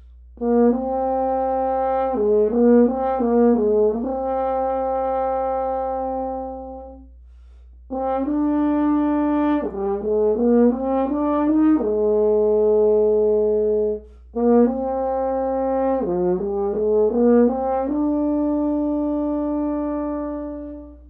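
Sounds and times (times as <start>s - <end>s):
french horn melody: 0.1s - 21.0s.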